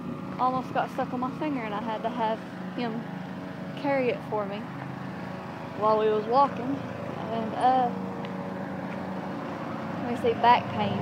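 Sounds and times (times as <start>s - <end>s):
distant engine humming: 0.0s - 11.0s
outdoor background noise: 0.0s - 11.0s.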